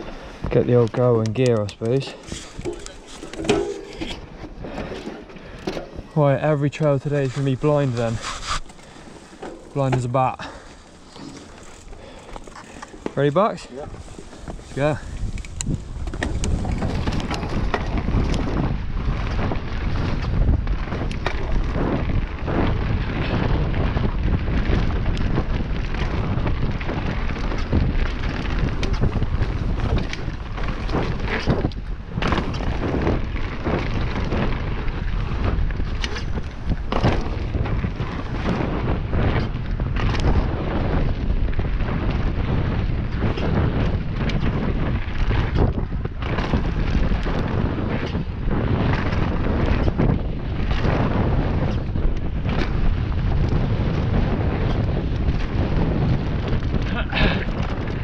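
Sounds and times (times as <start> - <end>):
bike knocks and rattles: 0.0 - 58.0
tyres rolling on dirt: 0.0 - 58.0
wind buffeting microphone: 0.0 - 58.0.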